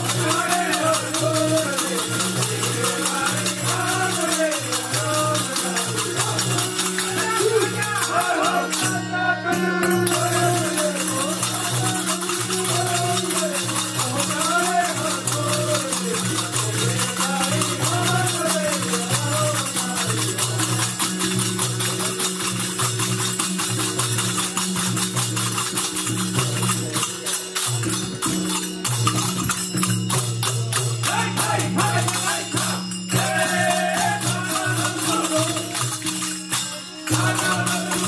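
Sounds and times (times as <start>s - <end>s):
harmonium chords: 0.0s - 16.3s
person singing: 0.0s - 20.6s, 31.1s - 38.0s
jingling hand percussion: 0.0s - 38.0s
rhythmic hand clapping: 0.0s - 38.0s.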